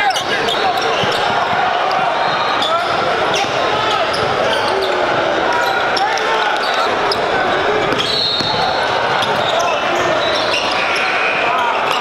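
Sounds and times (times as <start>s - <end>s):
sneakers squeaking: 0.0s - 12.0s
spectators chattering: 0.0s - 12.0s.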